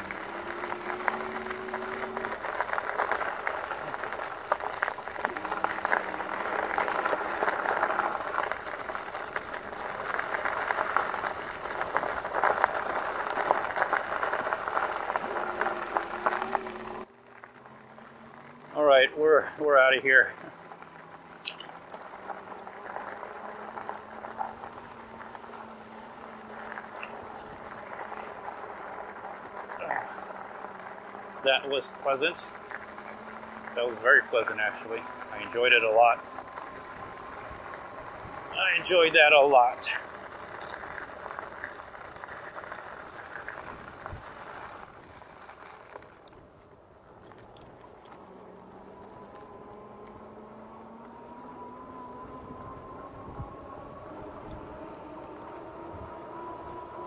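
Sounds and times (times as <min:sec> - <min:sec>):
bike tyre noise on dirt trail: 0:00.0 - 0:57.0.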